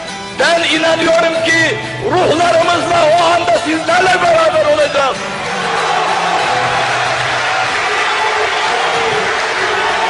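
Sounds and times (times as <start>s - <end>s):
audience applauding and cheering: 5.1s - 10.0s.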